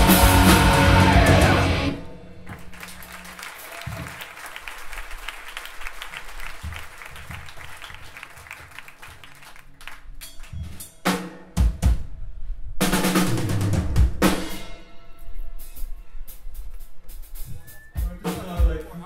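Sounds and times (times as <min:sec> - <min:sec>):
low held bass notes: 0:00.0 - 0:02.0
drum and cymbal hits: 0:00.0 - 0:03.0, 0:10.2 - 0:12.2, 0:12.8 - 0:19.0
full band playing: 0:00.0 - 0:05.0, 0:17.1 - 0:19.0.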